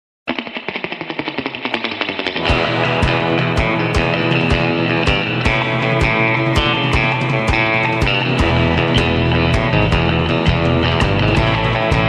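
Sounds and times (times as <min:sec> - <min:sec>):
rapid picked electric guitar: 0:00.3 - 0:12.0
full band with drums: 0:02.4 - 0:12.0.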